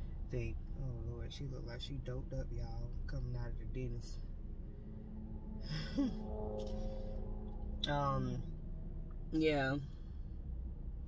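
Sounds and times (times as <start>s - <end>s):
low rumble inside car: 0.0s - 11.0s
woman humming: 5.6s - 6.3s
woman laughing: 5.7s - 6.2s.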